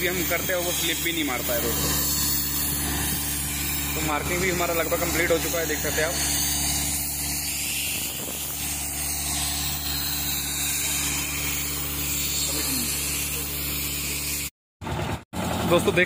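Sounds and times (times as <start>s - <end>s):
compressed-air hose hissing: 0.0s - 14.5s
air compressor engine running: 0.0s - 16.0s.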